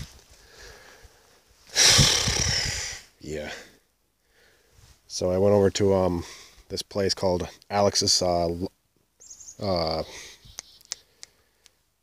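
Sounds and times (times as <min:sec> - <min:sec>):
loud breathy exhale: 0:00.4 - 0:03.1.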